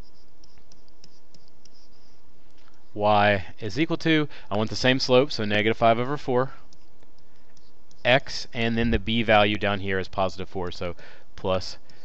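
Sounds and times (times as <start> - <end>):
stylus scratching on tablet: 0.0 - 3.0, 6.7 - 8.5
steady background hiss: 0.0 - 12.0.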